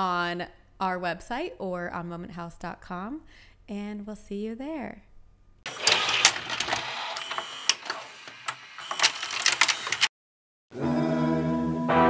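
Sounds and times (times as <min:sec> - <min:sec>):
rapid clicks and mechanical clatter: 0:05.7 - 0:10.1.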